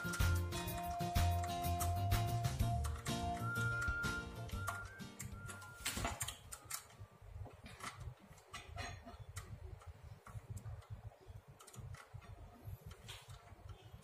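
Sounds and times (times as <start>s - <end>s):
background music: 0.0s - 6.1s.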